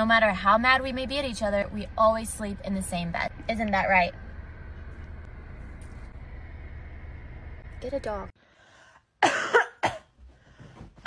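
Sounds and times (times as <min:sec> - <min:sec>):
woman coughing: 0:09.2 - 0:10.2.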